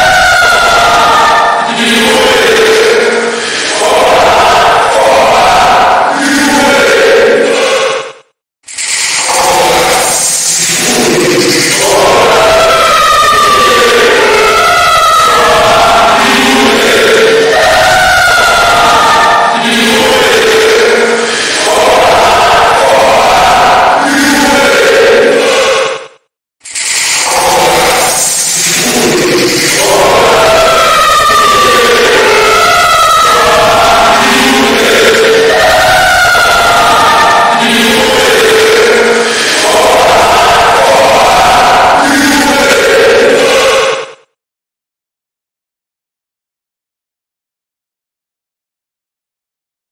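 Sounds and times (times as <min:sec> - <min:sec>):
dense distorted overlapping voices: 0:00.0 - 0:07.9, 0:08.8 - 0:25.9, 0:26.8 - 0:43.9.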